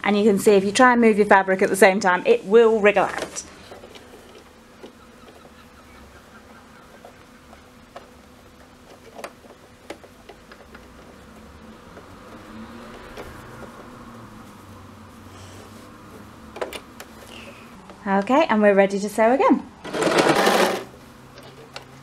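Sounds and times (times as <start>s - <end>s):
sewing machine buzzing: 19.8s - 21.0s.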